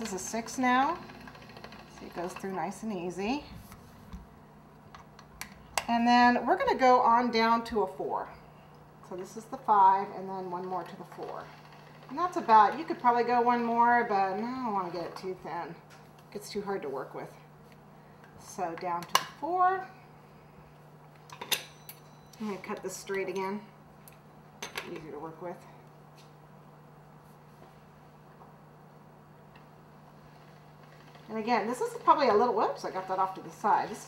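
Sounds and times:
pasta machine clicks: 0:00.0 - 0:02.6.

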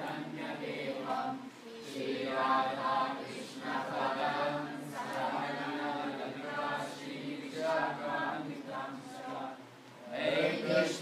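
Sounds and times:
group chanting a prayer: 0:00.0 - 0:11.0.

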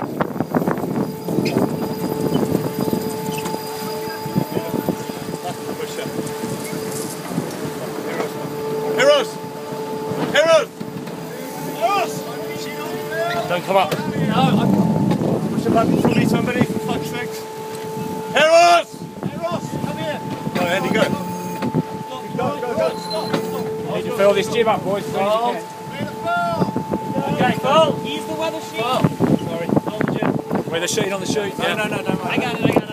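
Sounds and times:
wind and water rushing: 0:00.0 - 0:32.9
steady hum: 0:00.2 - 0:32.9.

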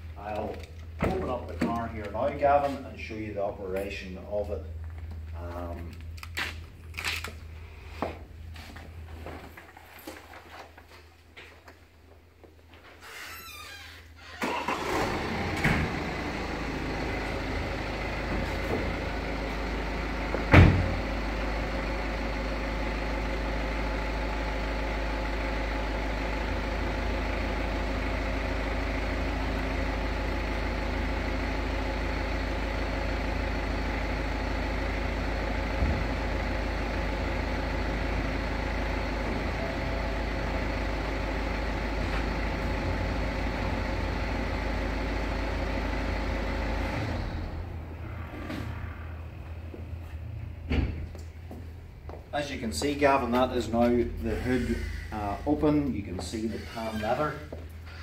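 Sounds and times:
folding car roof mechanism humming: 0:14.4 - 0:52.3.

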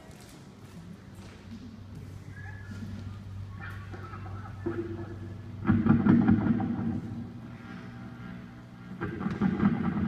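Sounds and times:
amplifier electrical hum: 0:00.0 - 0:10.0.

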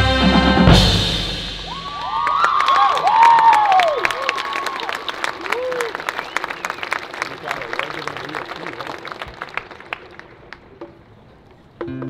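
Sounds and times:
marching band chord: 0:00.0 - 0:02.0
crowd applauding and cheering: 0:01.6 - 0:10.8
high whoops: 0:01.7 - 0:06.9.

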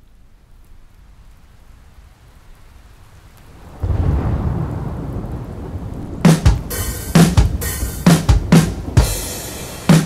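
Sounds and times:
rain-like hiss: 0:00.0 - 0:10.0
rolling thunder rumble: 0:03.6 - 0:10.0.

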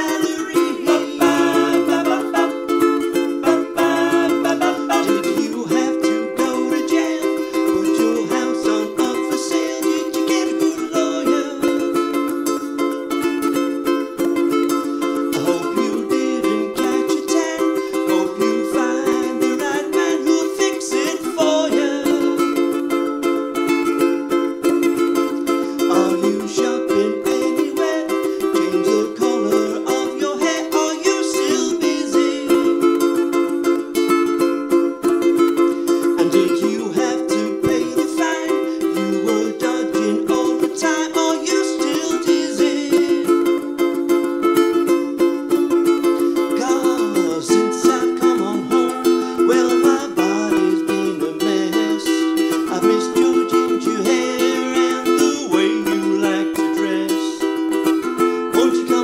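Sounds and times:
ukulele strumming chords: 0:00.0 - 0:59.0.

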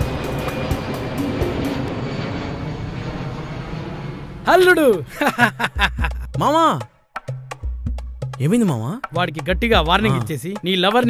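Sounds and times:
jet airliner flying over: 0:00.0 - 0:05.2.

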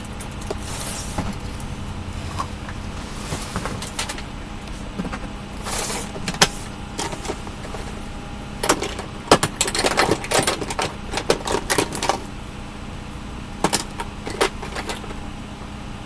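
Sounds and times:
plastic cases clattering: 0:02.3 - 0:08.0, 0:08.6 - 0:12.3, 0:13.6 - 0:15.2.

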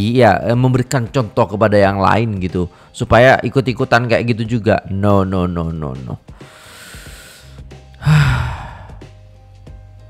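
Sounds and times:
faint background music: 0:00.0 - 0:10.0
man sighing heavily: 0:08.0 - 0:09.1.

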